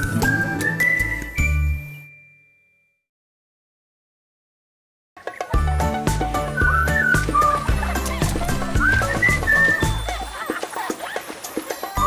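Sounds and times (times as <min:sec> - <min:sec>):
bell-like ding: 0:01.6 - 0:03.0.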